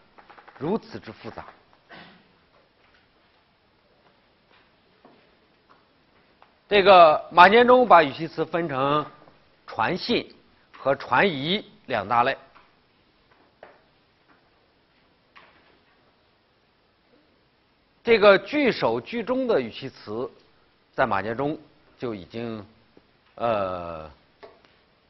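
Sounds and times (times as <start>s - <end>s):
faint steady hiss: 0.0s - 25.0s.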